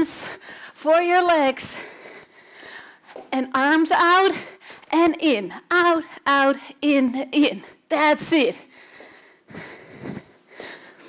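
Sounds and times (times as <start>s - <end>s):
woman breathing hard: 0.0s - 0.8s, 1.7s - 3.3s, 8.6s - 11.0s.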